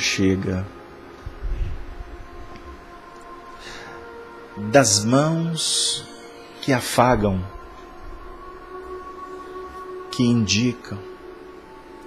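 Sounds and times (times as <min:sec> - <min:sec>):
soft music with sustained tones: 0:00.0 - 0:12.0.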